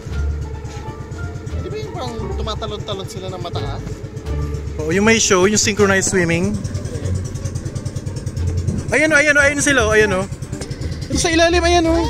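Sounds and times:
boat engine chugging: 0.0 - 12.0.

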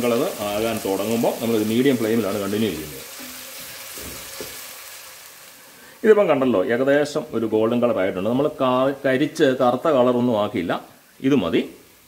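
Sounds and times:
onions sizzling in hot oil: 0.0 - 7.0
soft knock: 4.0 - 4.6.

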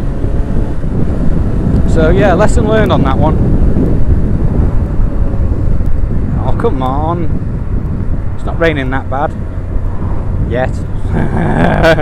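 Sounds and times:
motorcycle engine and road rumble: 0.0 - 12.0
wind buffeting microphone: 0.0 - 12.0.

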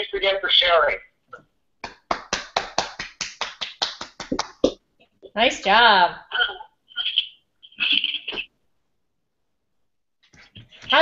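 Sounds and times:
person clapping hands: 1.8 - 4.8.

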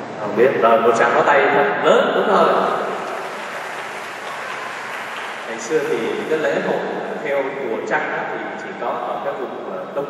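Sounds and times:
crowd applauding: 2.4 - 7.0.

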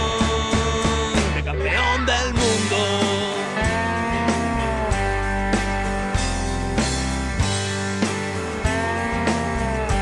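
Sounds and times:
electric guitar bending lead note: 0.0 - 10.0
rock band playing: 0.0 - 10.0.

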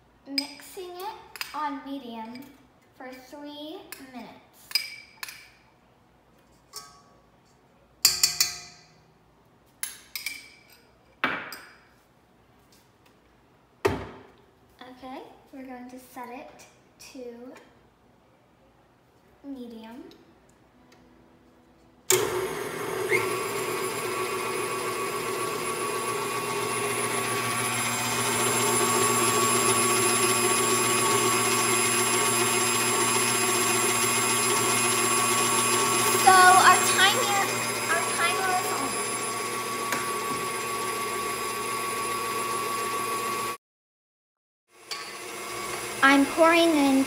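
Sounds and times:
stand mixer motor whining: 22.1 - 43.6, 44.8 - 46.8.

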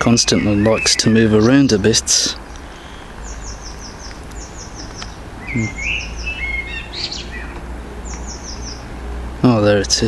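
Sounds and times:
songbird singing high falling notes: 0.0 - 1.9, 2.7 - 8.9
low steady rumble: 0.0 - 10.0
bird lower chirps: 2.5 - 8.9.

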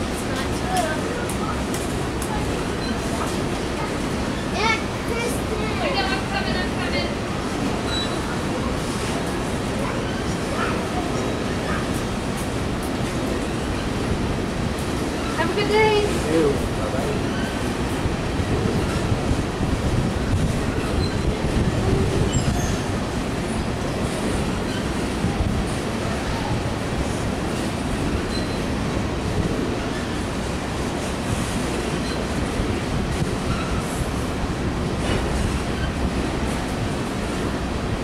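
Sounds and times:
train wheels rumbling on rails: 0.0 - 38.0
wheels squealing: 7.8 - 8.8, 20.5 - 25.2, 28.0 - 28.8.

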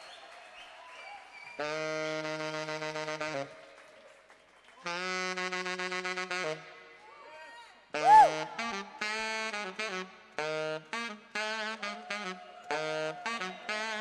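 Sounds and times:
tenor saxophone long notes: 1.6 - 3.6, 4.8 - 7.0, 7.9 - 14.0.

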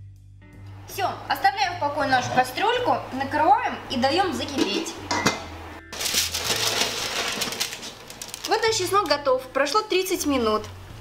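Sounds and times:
glass pot lid clinking: 4.6 - 5.5
baking paper rustling: 5.9 - 9.2.

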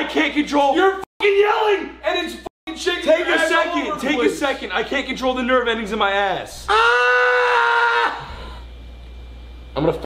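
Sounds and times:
man yelling in pain: 6.7 - 8.2.

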